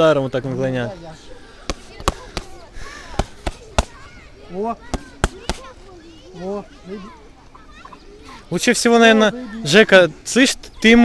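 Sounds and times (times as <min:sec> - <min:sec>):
boxing gloves smacking focus mitts: 0:01.6 - 0:04.1, 0:04.8 - 0:05.7.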